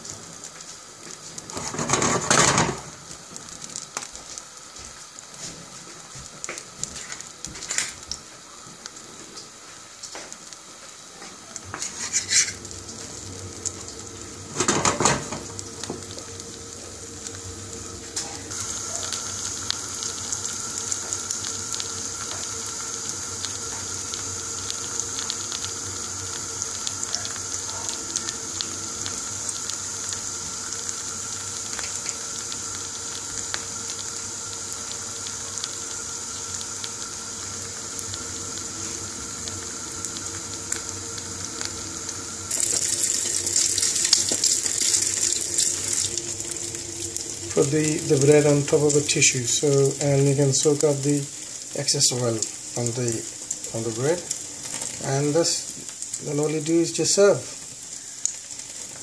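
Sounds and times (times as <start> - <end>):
bread sizzling in hot oil: 0.0 - 59.0.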